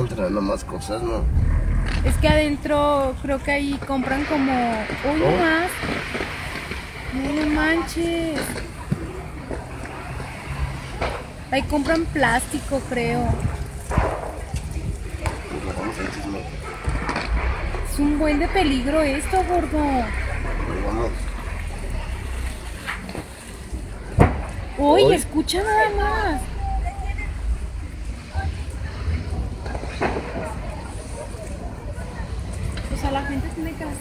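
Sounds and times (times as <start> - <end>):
faint voices: 0.0 - 34.0
large fire rushing: 0.0 - 34.0
sharp cracks of fire: 1.1 - 34.0.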